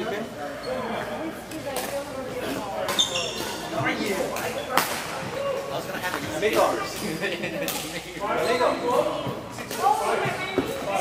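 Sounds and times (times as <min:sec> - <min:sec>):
shoe squeaks on court floor: 0:02.8 - 0:04.8, 0:08.4 - 0:08.9.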